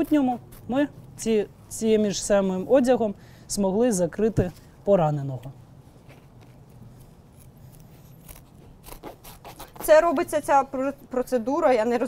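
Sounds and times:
shears snipping fabric: 6.1s - 10.6s.

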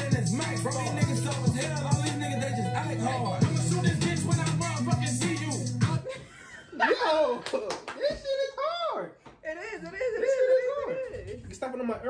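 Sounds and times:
man laughing: 5.8s - 8.4s, 9.8s - 11.5s
sharp hand claps: 7.4s - 8.2s.

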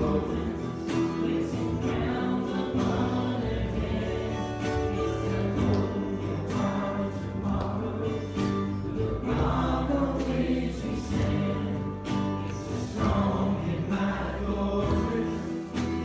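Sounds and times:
group singing in unison: 0.0s - 16.0s.

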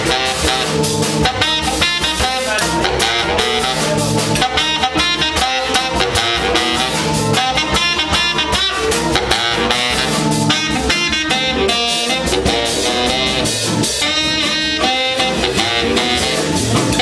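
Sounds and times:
baritone saxophone lead: 0.0s - 17.0s
bass: 0.0s - 17.0s
drum kit steady beat: 0.0s - 17.0s
guitar: 0.0s - 17.0s.

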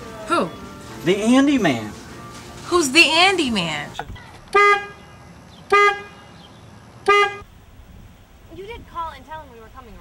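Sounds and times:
car horn short blasts: 4.5s - 6.4s, 7.0s - 7.4s.

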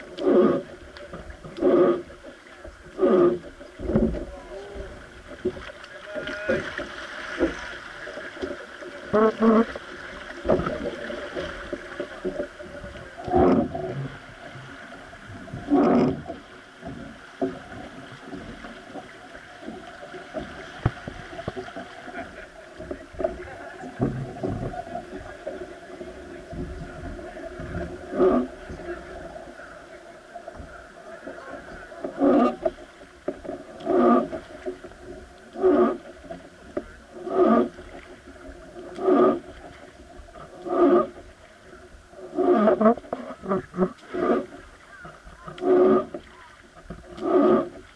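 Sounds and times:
oar groaning in oarlock: 0.0s - 47.9s
river water rushing: 4.3s - 22.7s.

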